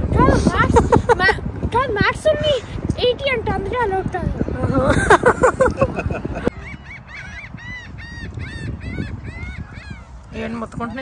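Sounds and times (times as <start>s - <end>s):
birds honking calls: 6.0s - 11.0s.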